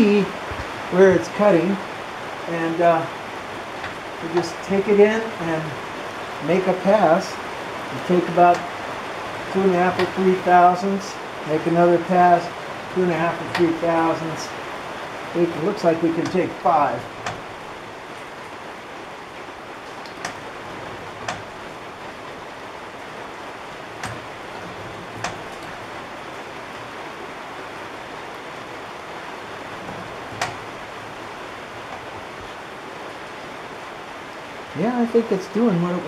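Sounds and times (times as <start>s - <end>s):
steady hiss: 0.0s - 36.0s.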